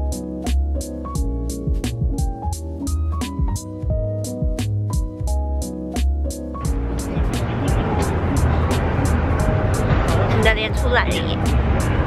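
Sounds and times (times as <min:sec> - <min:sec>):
background music with ticking beat: 0:00.0 - 0:12.0
road traffic: 0:06.6 - 0:12.0.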